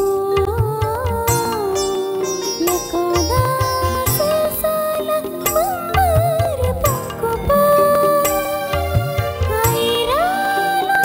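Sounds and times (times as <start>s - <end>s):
instrumental backing: 0.0s - 11.0s
person singing long high notes: 1.8s - 11.0s.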